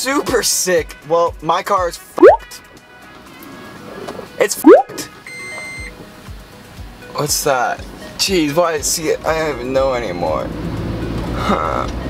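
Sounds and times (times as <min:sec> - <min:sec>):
electronic beep: 0:02.2 - 0:02.4, 0:04.7 - 0:05.9.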